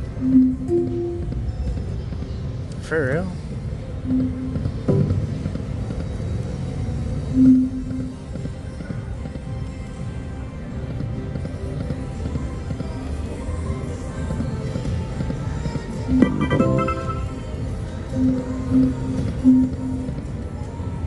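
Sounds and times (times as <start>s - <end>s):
slot machine game music: 0.2s - 1.3s, 16.1s - 17.6s
short tones: 16.1s - 17.6s.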